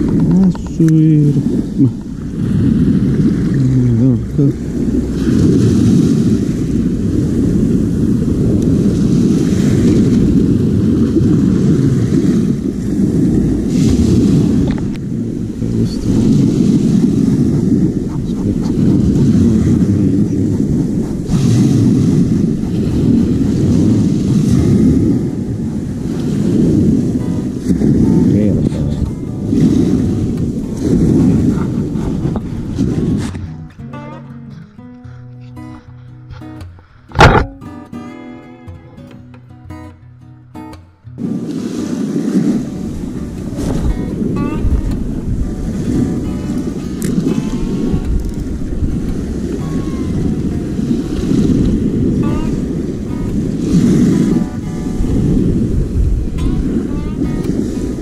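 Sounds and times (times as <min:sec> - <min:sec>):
surf washing onto pebbles: 0:00.0 - 0:33.9, 0:41.2 - 0:58.0
wind rumble on microphone: 0:00.0 - 0:37.9, 0:41.1 - 0:58.0
acoustic guitar music: 0:00.0 - 0:58.0.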